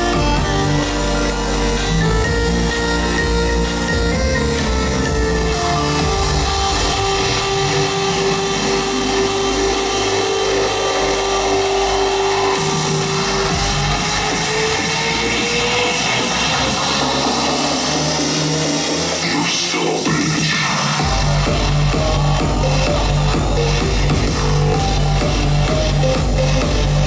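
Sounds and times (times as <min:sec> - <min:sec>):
electronic dance music: 0:00.0 - 0:27.0.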